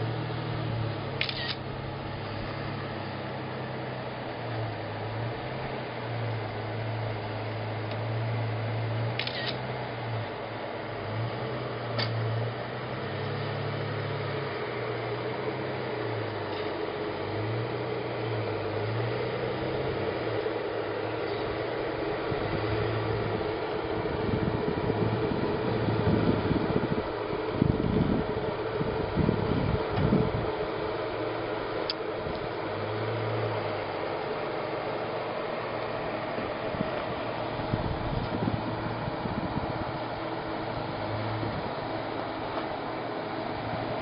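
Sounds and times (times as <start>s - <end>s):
distant engine revving: 0.0s - 44.0s.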